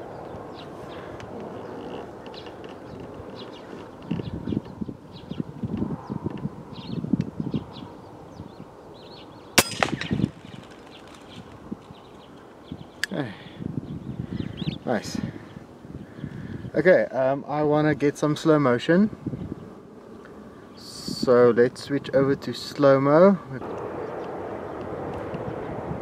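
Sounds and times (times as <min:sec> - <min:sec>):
small birds chirping: 0:00.0 - 0:21.5
air rifle shot: 0:09.6 - 0:10.6.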